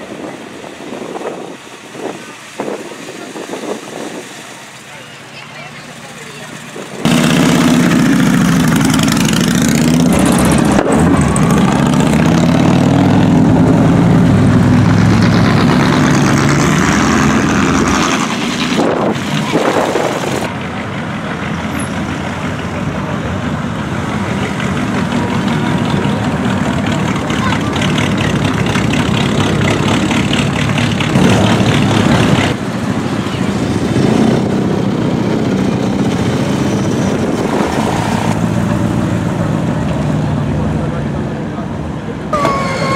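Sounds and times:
car engines revving loudly: 0:00.0 - 0:42.9
cars driving past: 0:00.0 - 0:42.9.

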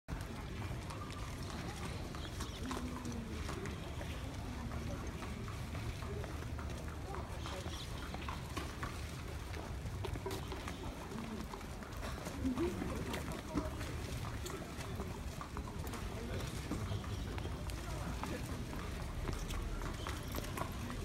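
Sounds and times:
indistinct murmuring voices: 0:00.1 - 0:21.0.

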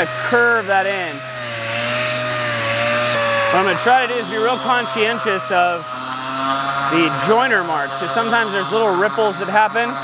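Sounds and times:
orbital sander sanding wood: 0:00.0 - 0:10.0.

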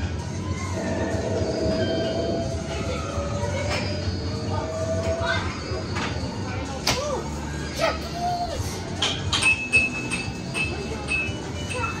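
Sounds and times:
arcade noise: 0:00.0 - 0:12.0.

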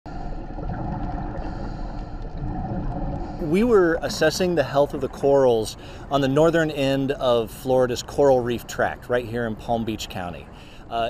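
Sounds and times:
faint steady tones: 0:00.1 - 0:11.0
muffled underwater rumble: 0:00.1 - 0:11.0.

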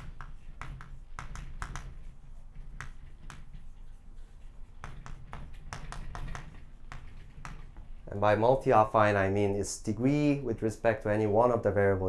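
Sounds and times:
chalk clicking on blackboard: 0:00.0 - 0:08.1.

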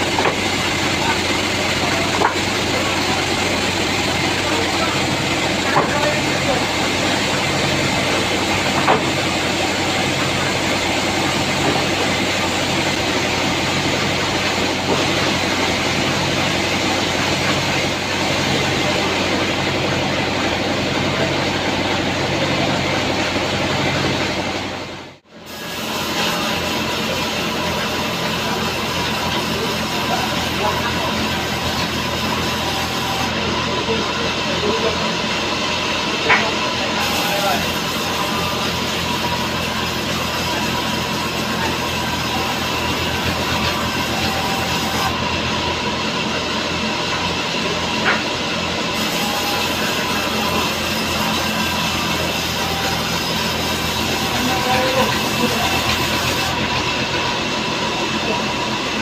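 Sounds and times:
band saw machinery running: 0:00.0 - 0:59.0.

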